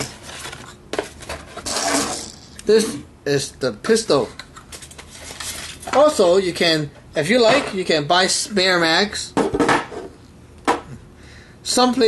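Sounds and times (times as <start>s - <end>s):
rubbing and scraping on table: 0.0s - 2.4s, 4.6s - 6.0s.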